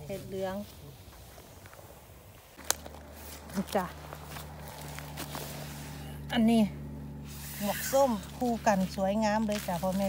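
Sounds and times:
footsteps crunching through dry leaves: 0.0s - 6.3s, 7.2s - 10.0s
steady low hum: 0.0s - 10.0s.

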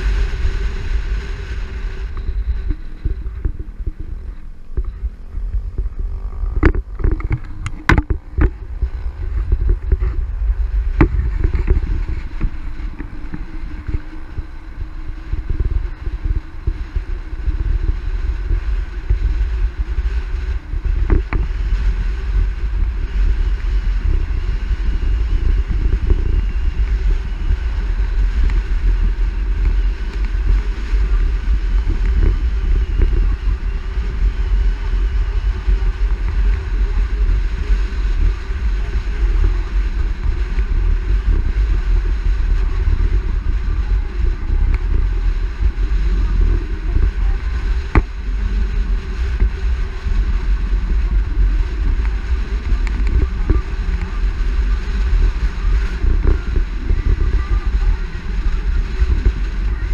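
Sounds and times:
car road noise: 0.0s - 59.9s
wind rumble on microphone: 0.0s - 59.9s.

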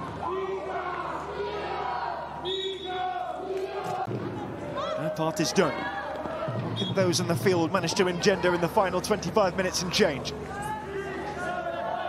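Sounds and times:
football crowd chanting: 11.1s - 12.0s.

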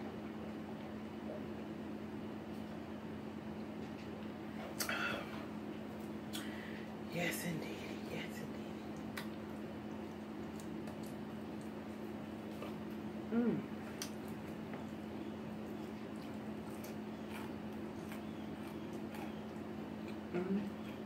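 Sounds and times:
steady low hum: 0.0s - 21.0s
chewing and mouth sounds: 8.8s - 21.0s.

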